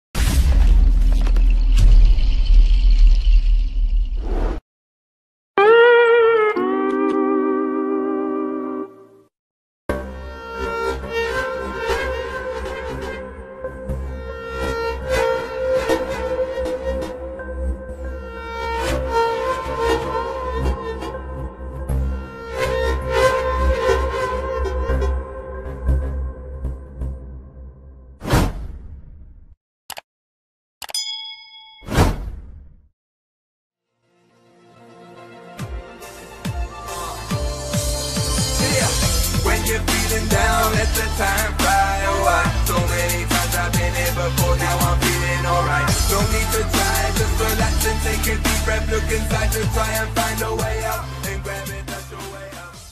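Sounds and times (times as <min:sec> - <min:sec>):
notification ding: 0:30.8 - 0:32.0.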